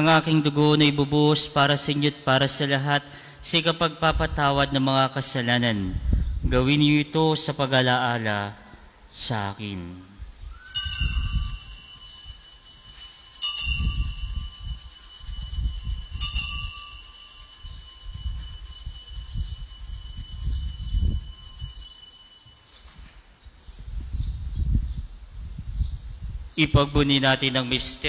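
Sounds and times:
altar bell ringing: 10.6 - 23.0.

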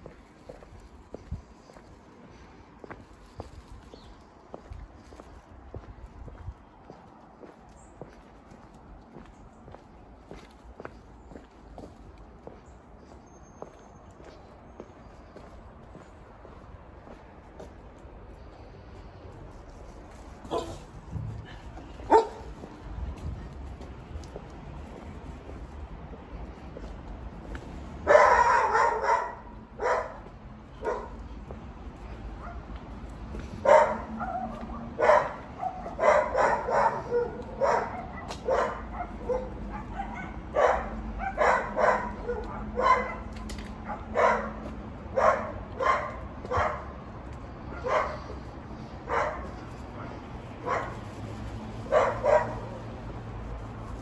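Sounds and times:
dog barking: 20.5 - 20.9, 22.1 - 22.5, 28.0 - 31.2, 33.6 - 46.9, 47.7 - 48.3, 49.0 - 51.0, 51.9 - 52.8.

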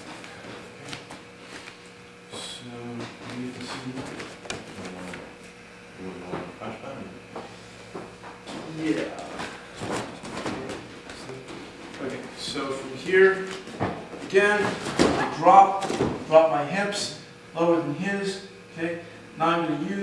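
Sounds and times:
men talking indistinctly: 2.3 - 5.3, 6.0 - 7.3, 8.5 - 13.6, 14.2 - 20.0.

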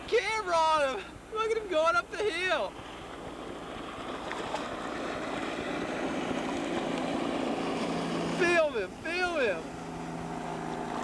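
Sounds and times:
motorboat engine running: 0.0 - 11.0.

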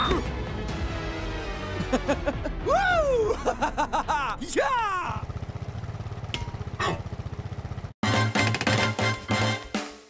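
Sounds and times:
vehicle engine idling: 4.1 - 8.0.

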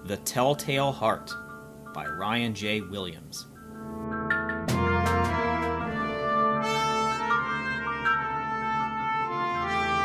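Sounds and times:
brass wind band chords: 4.7 - 10.0.

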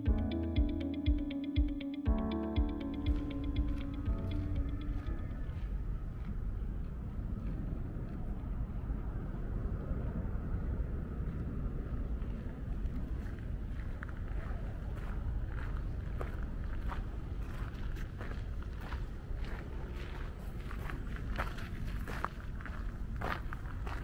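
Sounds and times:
wind on microphone: 4.0 - 24.0
footsteps on gravel: 13.2 - 24.0.

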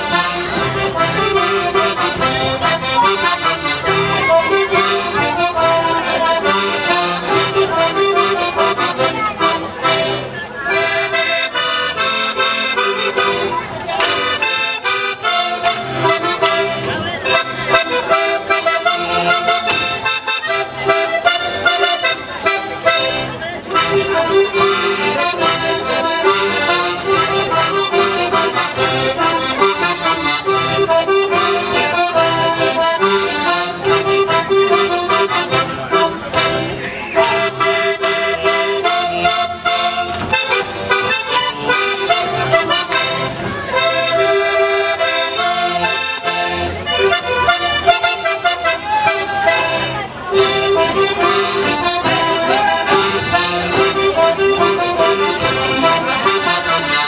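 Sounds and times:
folk dance music with accordion: 0.0 - 57.0.

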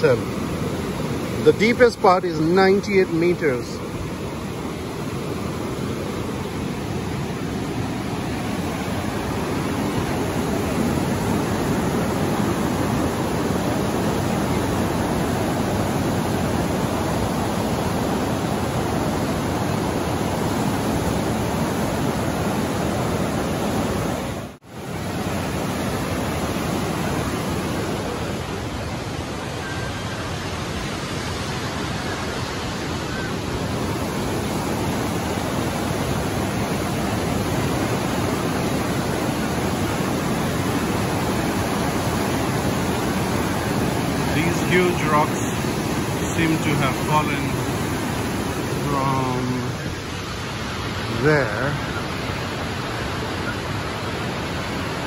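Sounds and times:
roar of rushing rapids: 0.0 - 55.0.

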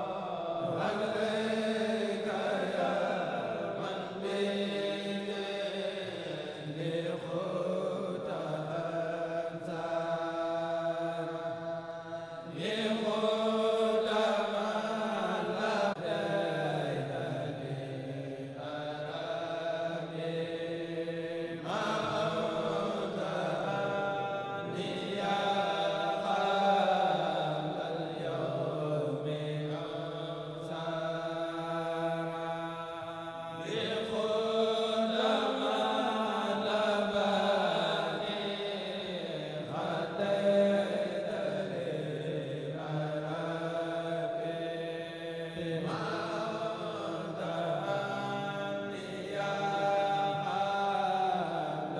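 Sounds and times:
men chanting in unison: 0.0 - 51.9.

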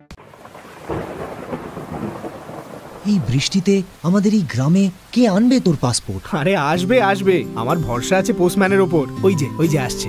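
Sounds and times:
heavy rain pouring: 0.1 - 10.0
thunder rumbling: 0.2 - 4.0.

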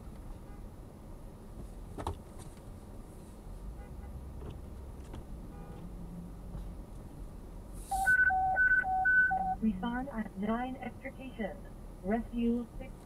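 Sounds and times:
low rumble of car: 0.0 - 13.0
dispatch alert beeps: 7.9 - 9.8.

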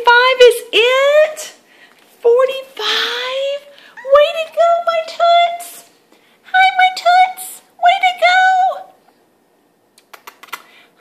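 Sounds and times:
light sharp clicks: 10.0 - 10.7.

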